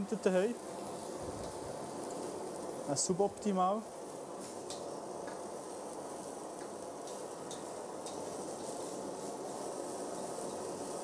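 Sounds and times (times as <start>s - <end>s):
gas torch hissing: 0.0s - 11.0s.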